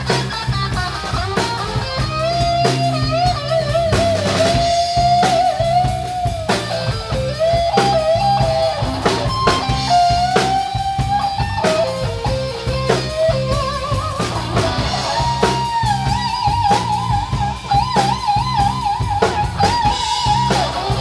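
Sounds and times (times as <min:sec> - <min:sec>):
drum kit beat: 0:00.0 - 0:21.0
electric guitar lead: 0:00.0 - 0:21.0.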